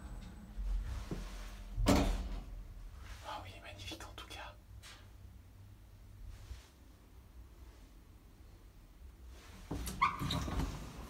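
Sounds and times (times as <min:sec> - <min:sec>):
lift doors sliding and rattling: 0:09.7 - 0:11.0
lift door squeak: 0:09.9 - 0:10.8.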